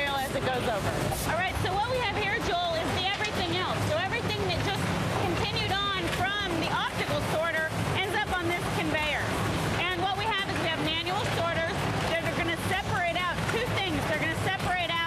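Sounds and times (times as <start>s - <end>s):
conveyor machinery rumbling: 0.0s - 15.0s
people talking: 0.0s - 15.0s.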